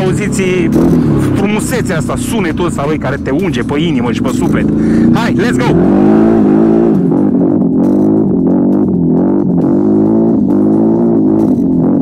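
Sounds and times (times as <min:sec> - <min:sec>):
atv engine revving: 0:00.0 - 0:12.0.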